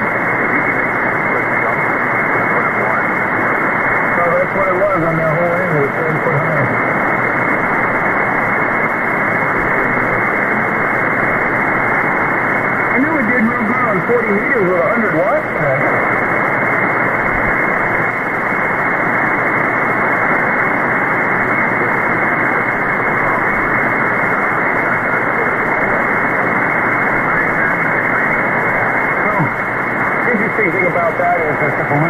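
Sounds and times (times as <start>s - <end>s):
faint voice through radio noise: 0.0s - 32.0s
radio static hiss: 0.0s - 32.0s.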